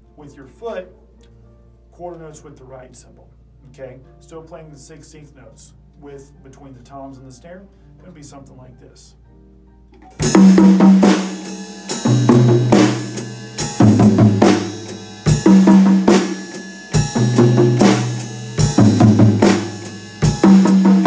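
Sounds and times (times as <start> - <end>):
drum kit groove: 9.9 - 21.0
bass drum: 10.0 - 21.0.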